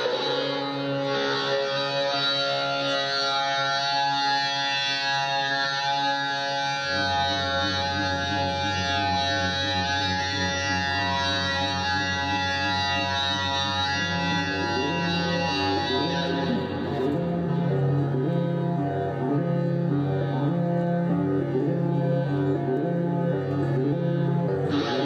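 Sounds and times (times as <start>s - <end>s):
sustained droning tones: 0.0s - 25.0s
low pulsing bass line: 6.8s - 25.0s.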